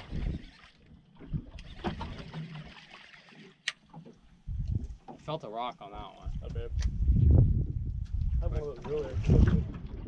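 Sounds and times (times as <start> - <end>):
water lapping against boat hull: 0.0 - 6.9, 7.9 - 10.0.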